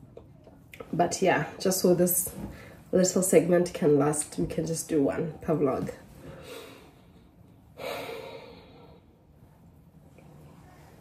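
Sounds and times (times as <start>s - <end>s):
faint breathing: 6.2s - 9.6s.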